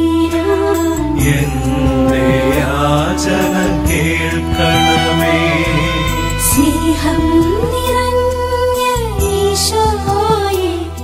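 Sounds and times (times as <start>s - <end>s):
instrumental accompaniment: 0.8s - 9.7s
person singing a hymn: 1.2s - 7.7s.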